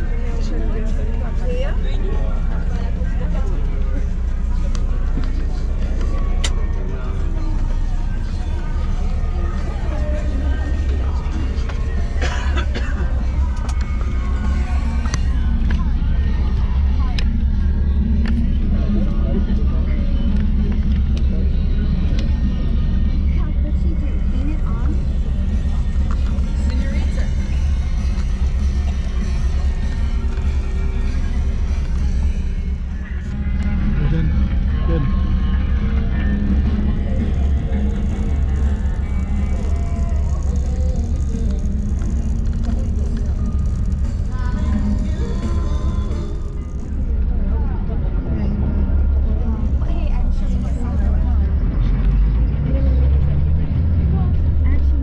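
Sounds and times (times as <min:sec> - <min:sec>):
bus engine rumble: 0:00.0 - 0:55.0
music: 0:00.0 - 0:55.0
passengers chatting: 0:00.0 - 0:55.0
road noise: 0:00.0 - 0:55.0.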